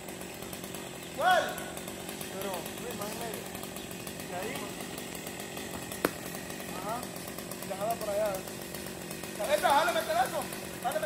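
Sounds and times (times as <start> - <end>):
chainsaw running: 0.0 - 11.0.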